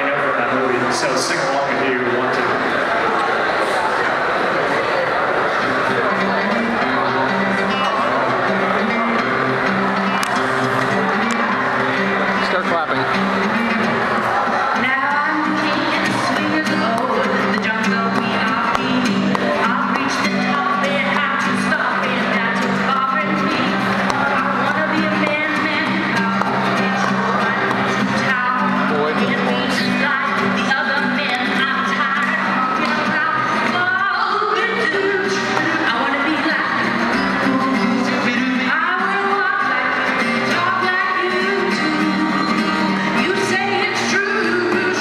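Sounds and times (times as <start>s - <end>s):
acoustic guitar strumming: 0.0s - 45.0s
voices: 0.0s - 45.0s
person singing: 13.2s - 45.0s.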